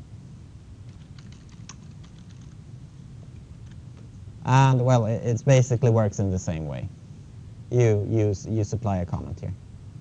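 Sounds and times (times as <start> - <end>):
computer keyboard typing: 0.9 - 2.6.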